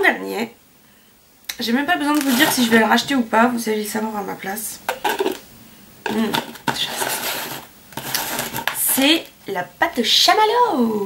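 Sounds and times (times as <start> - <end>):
woman's voice: 0.0 - 0.6, 1.5 - 4.8, 6.1 - 6.9, 8.8 - 11.0
rustling and handling noise: 1.9 - 3.3, 4.8 - 9.4.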